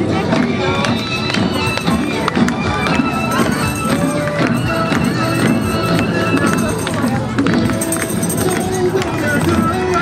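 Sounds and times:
crowd chatter: 0.0 - 10.0
traditional parade music: 0.0 - 10.0
sharp percussion strikes: 0.1 - 10.0.

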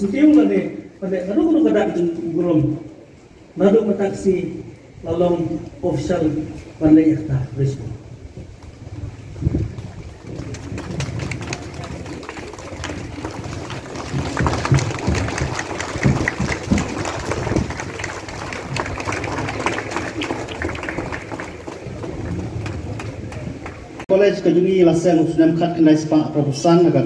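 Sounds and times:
crowd voices: 8.0 - 24.0.

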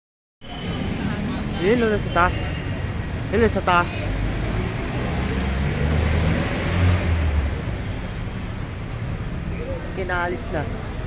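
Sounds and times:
street noise: 0.4 - 11.0.

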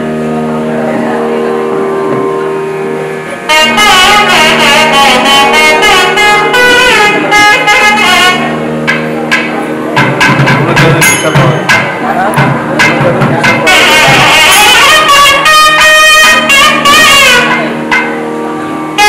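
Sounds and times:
double-reed pipe melody: 0.0 - 19.0
drum strokes: 0.0 - 19.0
reed pipe drone: 0.0 - 19.0.

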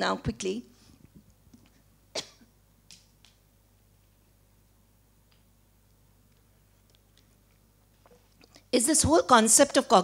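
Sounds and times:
person coughing: 2.1 - 2.5.

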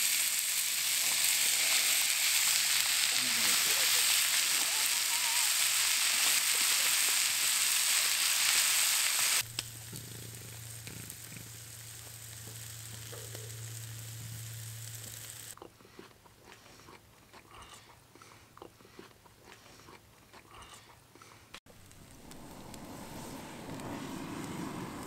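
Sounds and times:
faint crackles: 0.0 - 15.6, 21.7 - 25.0
steaks sizzling in a skillet: 0.0 - 15.6
steady low hum: 9.4 - 15.6.

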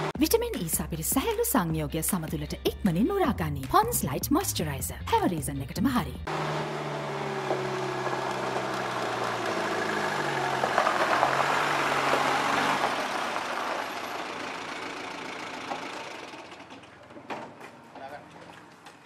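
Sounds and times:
jeep engine driving up: 0.0 - 0.2, 6.2 - 17.2.

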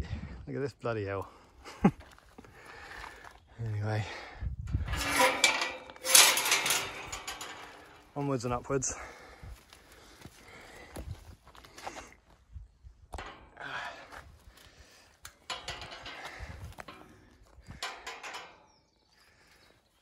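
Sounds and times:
metal gate knocks and rattles: 4.8 - 8.5, 15.3 - 18.7.

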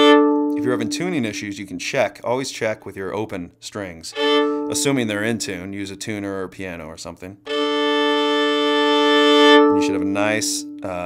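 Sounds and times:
fiddle bowing a double stop: 0.0 - 1.4, 4.2 - 5.1, 7.5 - 10.7.

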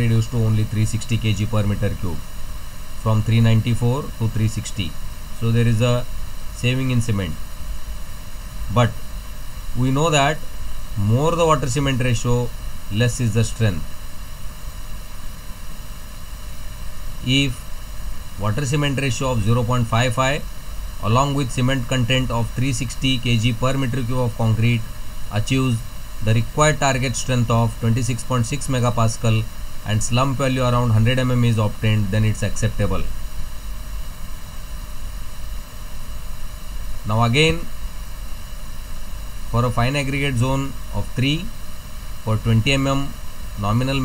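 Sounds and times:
low rumble with faint hiss: 0.0 - 44.0.

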